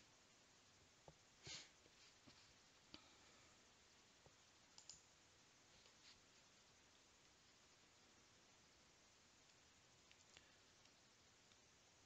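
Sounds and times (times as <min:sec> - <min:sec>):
computer mouse clicks: 0:04.7 - 0:05.1, 0:09.4 - 0:11.7.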